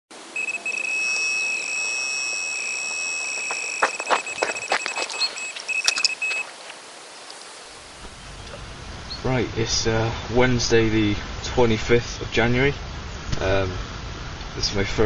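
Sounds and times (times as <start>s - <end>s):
electronic bite alarm tone: 0.4s - 6.5s.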